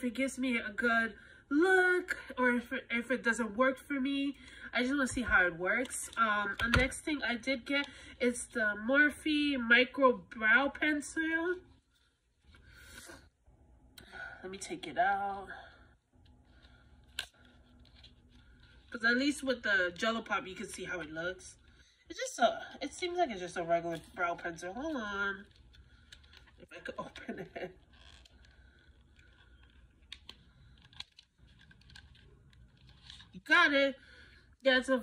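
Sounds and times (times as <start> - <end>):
faint steady hum: 0.0 - 35.0
packaging clicks and scrapes: 28.0 - 33.4.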